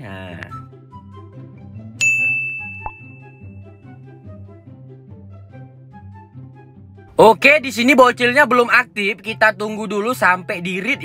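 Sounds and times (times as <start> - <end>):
soft background music: 0.0 - 11.0
bright bell ding: 2.0 - 3.6.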